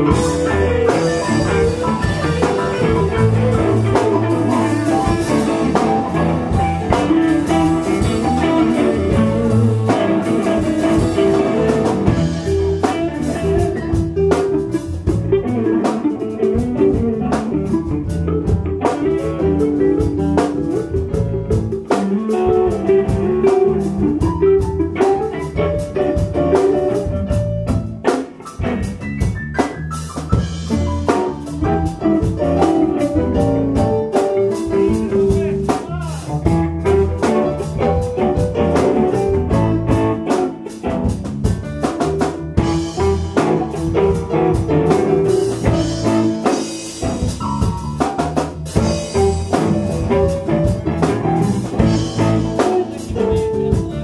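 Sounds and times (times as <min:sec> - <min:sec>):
drum kit steady beat: 0:00.0 - 0:54.0
electric bass: 0:00.0 - 0:54.0
electric guitars: 0:00.0 - 0:54.0
keyboard: 0:00.0 - 0:54.0.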